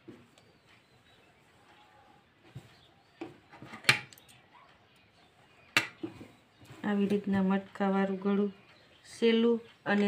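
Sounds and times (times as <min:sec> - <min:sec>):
sharp taps and clicks: 0:05.7 - 0:06.3.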